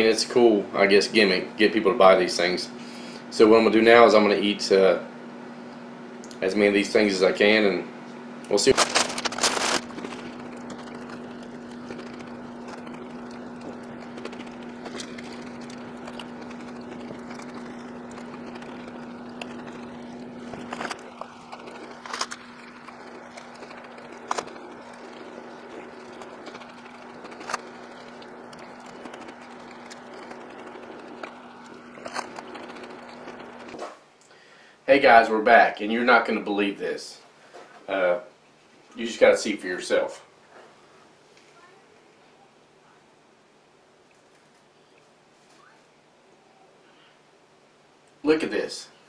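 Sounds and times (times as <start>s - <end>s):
low room hum: 0.0s - 49.0s.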